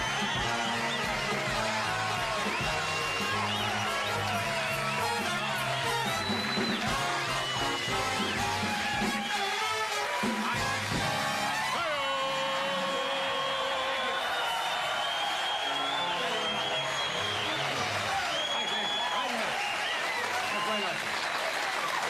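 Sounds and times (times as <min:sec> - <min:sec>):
band playing theme music: 0:00.0 - 0:12.6
audience applauding and cheering: 0:00.0 - 0:22.0.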